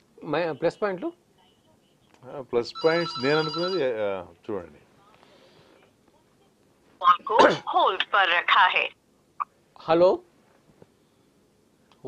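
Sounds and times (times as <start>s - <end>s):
electronic telephone ring: 2.7s - 4.0s.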